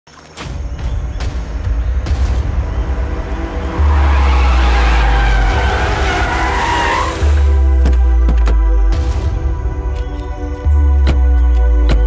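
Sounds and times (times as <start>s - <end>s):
deep bass drone: 0.7s - 12.0s
loud noisy swell: 2.4s - 7.6s.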